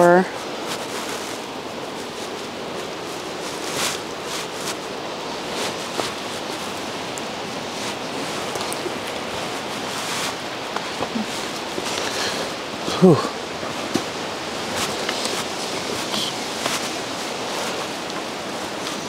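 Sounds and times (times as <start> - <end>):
steady rushing outdoor noise: 0.0 - 19.0
footsteps crunching on dead leaves: 0.3 - 12.8, 13.4 - 19.0.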